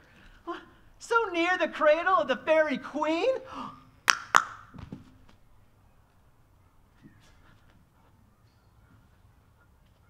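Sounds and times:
sharp percussive hits: 0:04.1 - 0:04.7.

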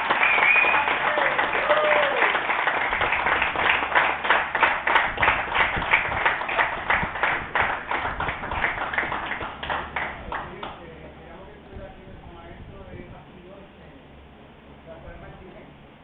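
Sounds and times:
people clapping: 0:00.0 - 0:10.9.

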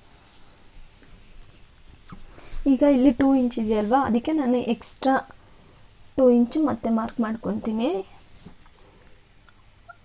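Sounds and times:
soft rustles: 0:00.0 - 0:09.4.

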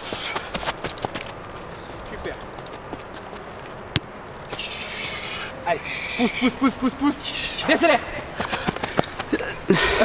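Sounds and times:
footsteps running on grass: 0:00.0 - 0:04.6.

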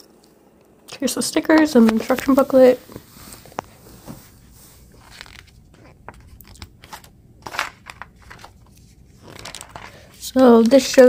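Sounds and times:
paper pages rustling: 0:01.6 - 0:11.0.

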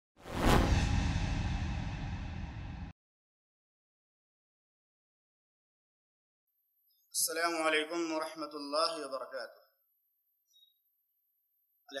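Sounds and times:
whoosh sound effect: 0:00.2 - 0:02.9.

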